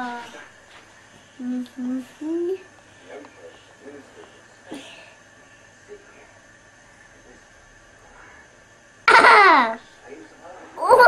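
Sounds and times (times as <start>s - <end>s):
child humming: 0.0s - 0.4s, 1.4s - 2.6s
child whining: 0.0s - 0.4s.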